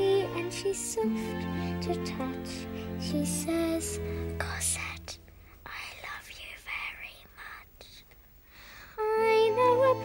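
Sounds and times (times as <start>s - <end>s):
girl whispering: 4.4s - 8.1s.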